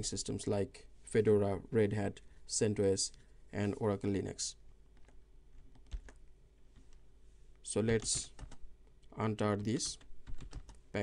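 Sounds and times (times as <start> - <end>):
computer keyboard keystrokes: 5.0 - 6.2, 8.0 - 8.6, 9.8 - 10.8.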